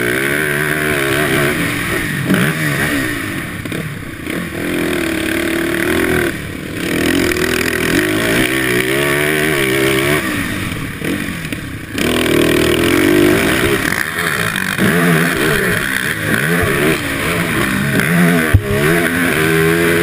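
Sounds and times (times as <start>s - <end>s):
quad engine revving: 0.0s - 20.0s
sharp thump: 18.4s - 18.9s.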